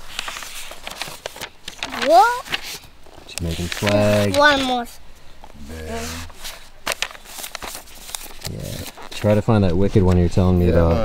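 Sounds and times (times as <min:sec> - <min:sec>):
paper rustling: 0:00.0 - 0:10.5.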